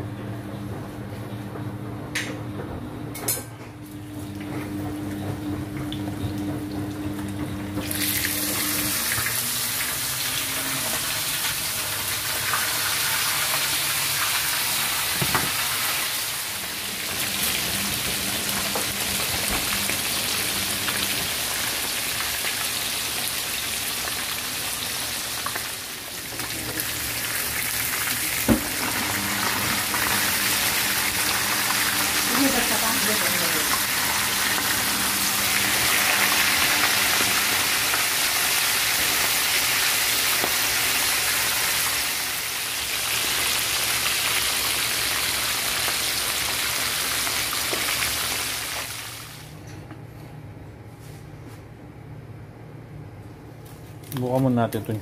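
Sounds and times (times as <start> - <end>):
fish deep-frying in oil: 7.8 - 49.5.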